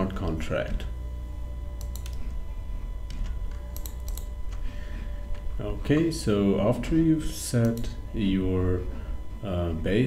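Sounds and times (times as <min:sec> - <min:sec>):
low steady hum: 0:00.0 - 0:10.0
mouse and keyboard clicks: 0:03.1 - 0:04.3.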